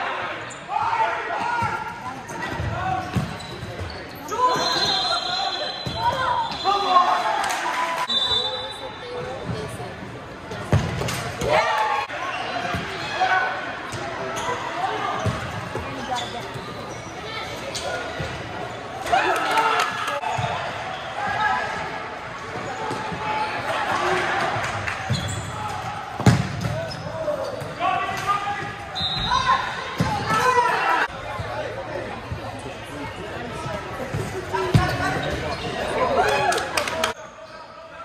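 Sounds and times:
players and spectators shouting: 18.9 - 31.6.

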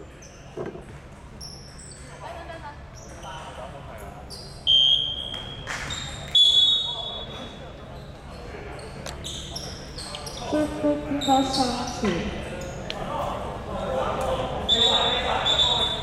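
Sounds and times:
referee's whistle blasts: 4.6 - 7.4, 14.7 - 16.0
shoes squeaking on hardwood court: 7.9 - 10.6, 11.2 - 12.8.

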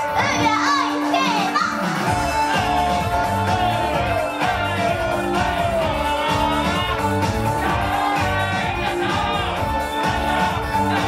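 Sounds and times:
pop backing track: 0.0 - 11.0.

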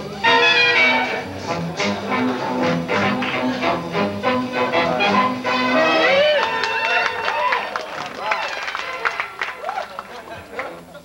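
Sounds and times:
backing music: 0.0 - 9.7
audience whooping: 5.7 - 10.3
scattered clapping: 6.3 - 11.0.

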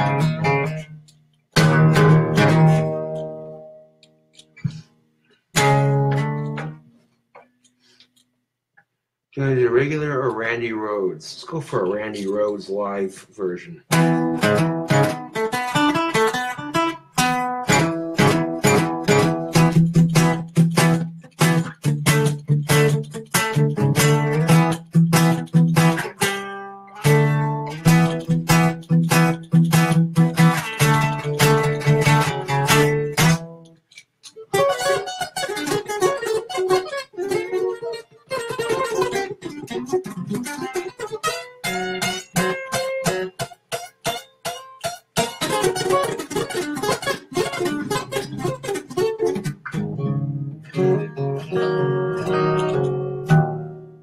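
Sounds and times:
acoustic guitar fast picking: 1.6 - 3.4, 13.9 - 33.6, 34.5 - 53.8.

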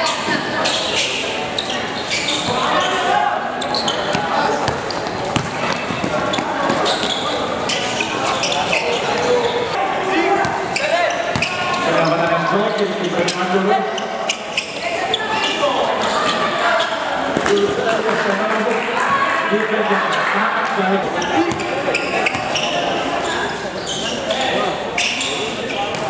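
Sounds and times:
basketball bouncing on hard court: 4.6 - 6.8, 11.3 - 11.8.

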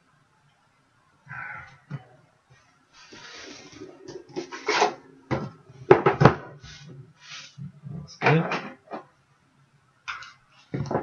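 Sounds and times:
rustling and scraping on desk: 2.9 - 7.6.

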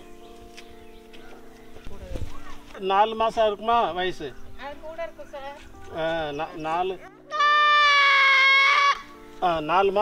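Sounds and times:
young goat bleating: 7.3 - 9.1.

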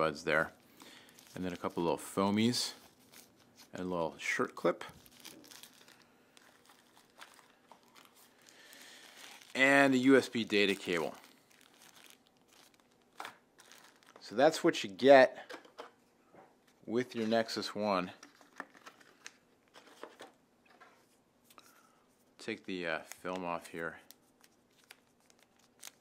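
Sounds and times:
plastic bag crinkling: 0.6 - 3.8, 4.8 - 14.4, 24.0 - 26.0.

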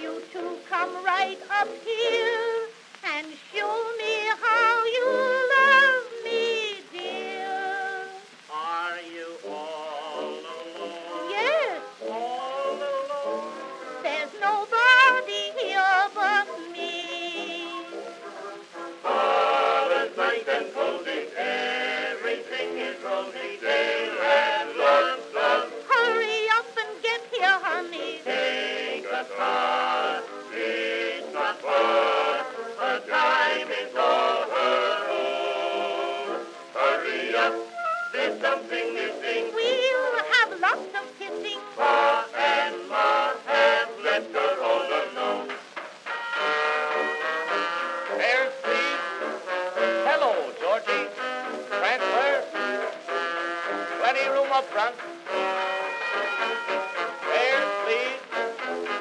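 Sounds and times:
small orchestra with brass: 27.6 - 39.4, 40.1 - 59.0.

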